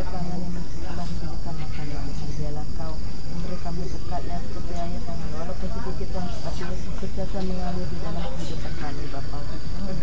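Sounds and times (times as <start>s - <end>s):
insects chirring: 0.0s - 10.0s
woman praying: 0.0s - 10.0s.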